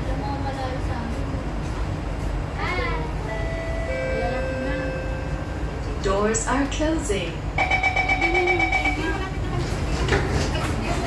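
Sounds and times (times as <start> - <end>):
train hum: 0.0 - 11.0.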